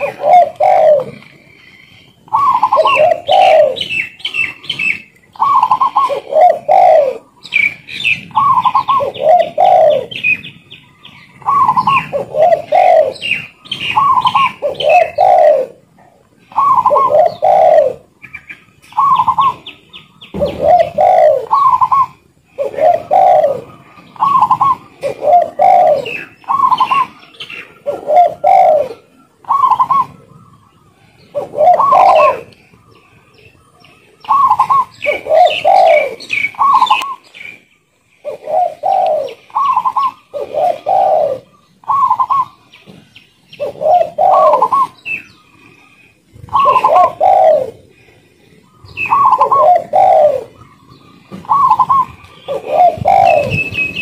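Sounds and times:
high chirping: 0.0s - 15.7s, 16.4s - 54.0s
dove cooing: 0.0s - 54.0s.

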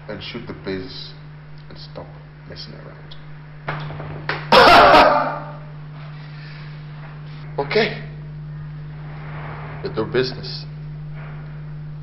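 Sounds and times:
man coughing: 4.6s - 5.6s.

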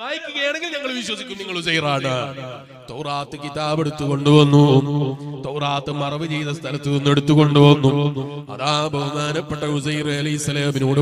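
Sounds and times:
man chanting religious recitation: 0.0s - 11.0s.

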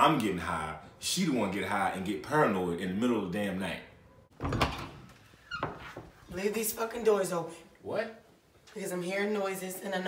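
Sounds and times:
doors flung open with bang: 4.3s - 5.8s
door knock with squeak: 4.3s - 6.2s.

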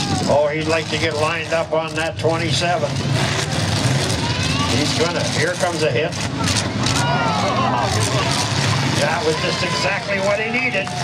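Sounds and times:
truck engines running and revving: 0.0s - 11.0s.

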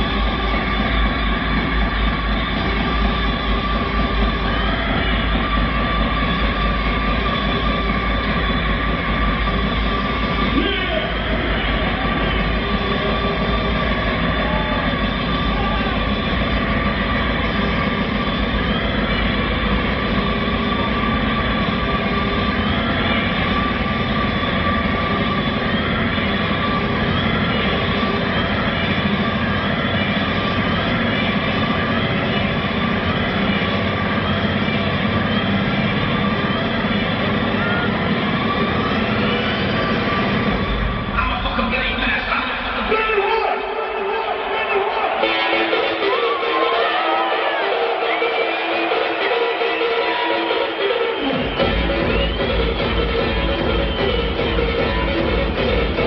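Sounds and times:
hardstyle dance music: 0.0s - 56.0s.

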